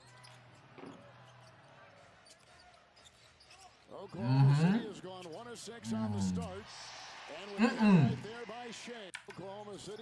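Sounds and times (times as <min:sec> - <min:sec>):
low arena noise: 0:05.7 - 0:09.1.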